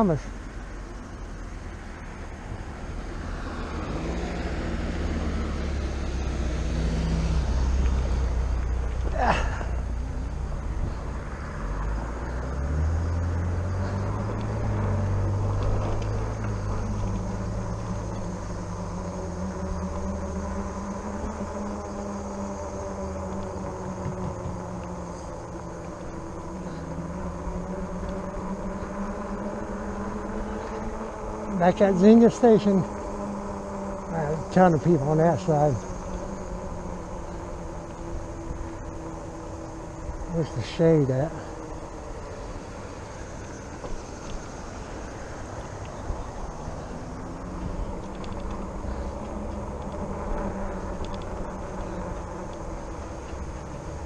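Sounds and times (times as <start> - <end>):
tyre and motor noise: 0.0 - 54.0
faint steady whine: 13.0 - 54.0.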